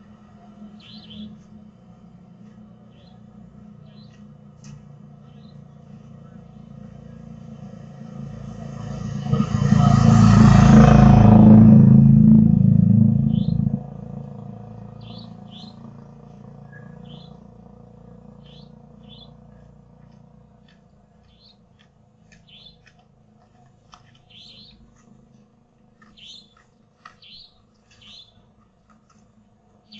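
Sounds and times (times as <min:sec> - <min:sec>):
motorcycle engine passing: 0:00.0 - 0:23.4.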